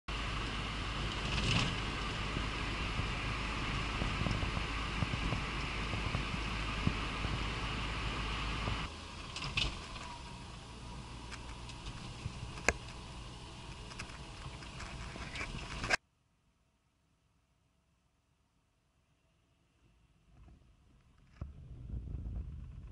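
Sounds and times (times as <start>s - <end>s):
car cabin road noise: 0.1s - 16.0s
car hum in slow driving: 0.1s - 16.0s, 19.1s - 22.9s.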